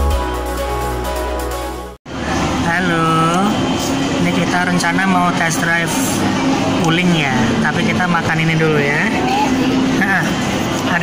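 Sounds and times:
people talking: 2.6s - 3.6s, 4.2s - 11.0s.

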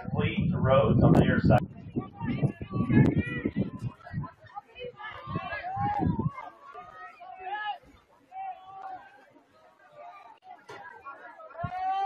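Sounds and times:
voices calling and talking: 0.0s - 12.0s.

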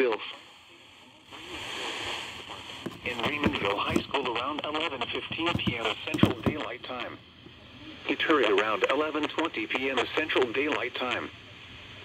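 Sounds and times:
radio static hiss: 0.0s - 12.0s
radio broadcast voice: 2.9s - 11.4s.

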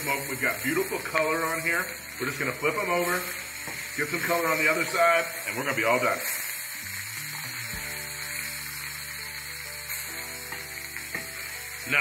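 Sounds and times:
meat sizzling in hot oil: 0.0s - 12.0s
soft background music: 0.0s - 12.0s.

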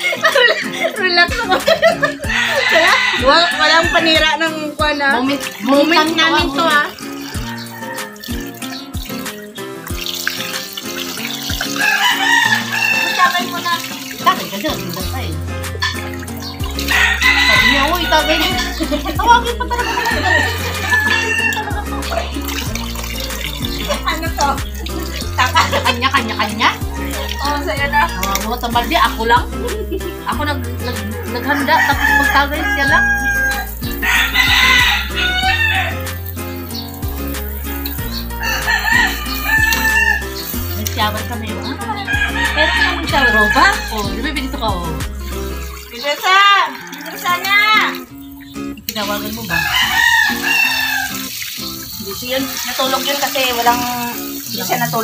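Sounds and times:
background music: 0.0s - 55.0s
rooster crowing: 2.1s - 4.4s, 6.9s - 8.9s, 11.6s - 13.6s, 16.7s - 18.8s, 19.6s - 23.8s, 26.9s - 28.4s, 31.5s - 37.0s, 38.2s - 40.8s, 41.9s - 44.2s, 46.2s - 48.0s, 49.4s - 51.4s
hose water pouring into pool: 5.0s - 29.4s, 31.4s - 41.3s, 43.1s - 55.0s.

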